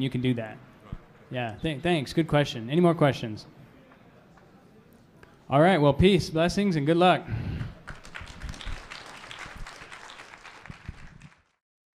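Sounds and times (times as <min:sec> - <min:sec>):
audience applauding: 0:07.6 - 0:11.6.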